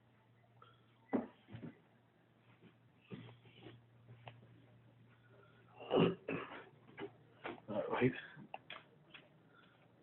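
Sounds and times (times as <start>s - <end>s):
person coughing: 5.8s - 6.7s.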